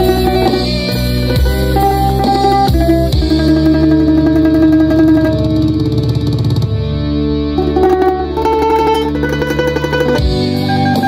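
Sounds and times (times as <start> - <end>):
bandurria tremolo melody: 0.0 - 11.0
instrumental backing track: 0.0 - 11.0.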